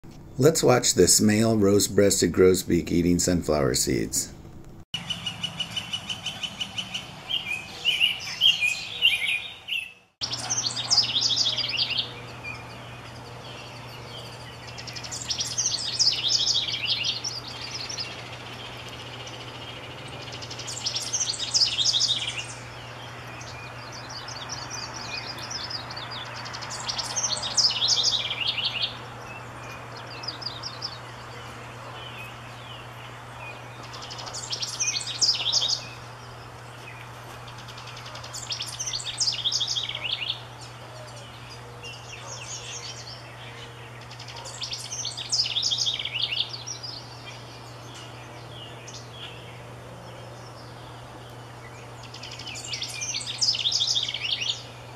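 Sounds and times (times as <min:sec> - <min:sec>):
steady low hum: 0:00.1 - 0:07.8, 0:10.2 - 0:54.9
wren singing: 0:05.0 - 0:54.9.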